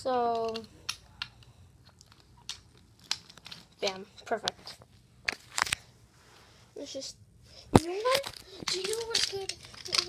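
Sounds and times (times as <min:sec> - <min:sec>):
toy pieces clicking: 0:00.1 - 0:04.1, 0:08.0 - 0:10.0.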